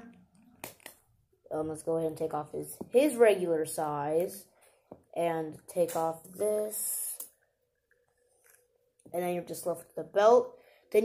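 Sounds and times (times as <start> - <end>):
person speaking: 5.1 - 7.3.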